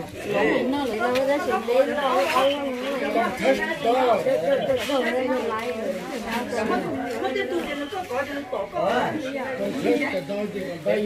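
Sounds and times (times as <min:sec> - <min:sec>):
women and girls chatting: 0:00.0 - 0:11.0.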